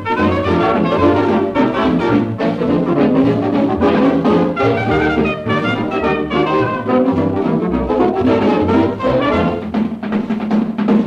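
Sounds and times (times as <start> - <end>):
dance orchestra playing on old record: 0.0 - 11.0.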